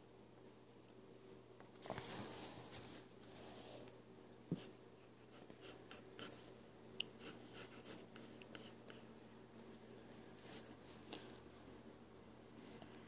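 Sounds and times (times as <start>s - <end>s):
pencil scratching on paper: 4.6s - 6.5s, 7.2s - 9.1s.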